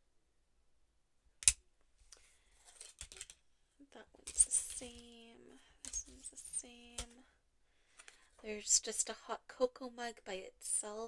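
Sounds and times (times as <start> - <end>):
wooden ornaments clacking: 2.6 - 3.4, 4.2 - 5.2, 5.8 - 7.1.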